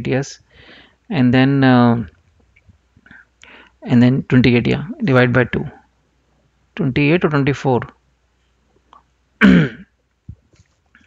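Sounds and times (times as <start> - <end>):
man clearing throat: 9.4 - 10.0.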